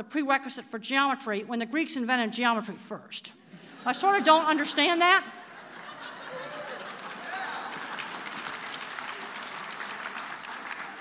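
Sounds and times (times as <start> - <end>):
audience applauding: 6.0 - 11.0.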